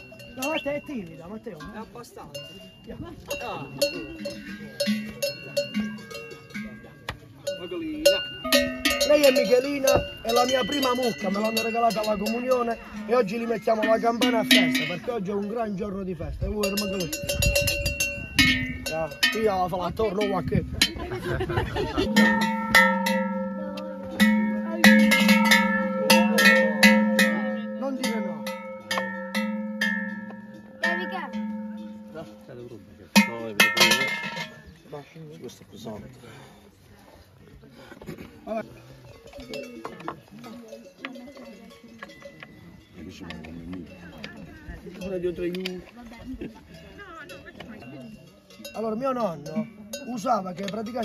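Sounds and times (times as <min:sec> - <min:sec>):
cowbells clanking: 0:00.0 - 0:36.2, 0:38.2 - 0:51.0.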